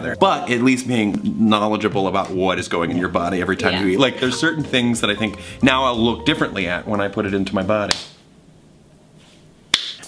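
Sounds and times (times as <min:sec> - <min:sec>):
finger snap: 0:07.9 - 0:08.2, 0:09.7 - 0:10.0.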